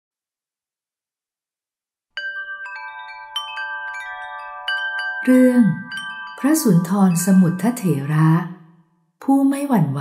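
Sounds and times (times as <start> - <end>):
wind chimes ringing: 2.2 - 9.0.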